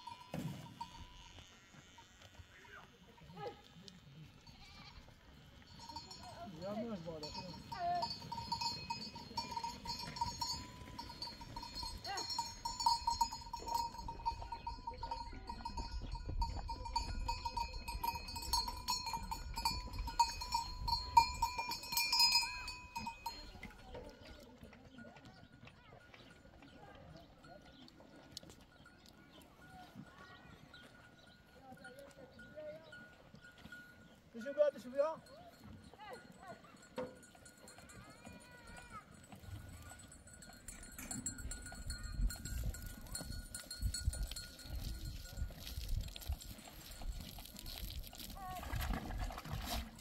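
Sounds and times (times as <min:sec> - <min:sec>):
goat bells ringing: 0:00.0 - 0:02.5, 0:04.2 - 0:50.0.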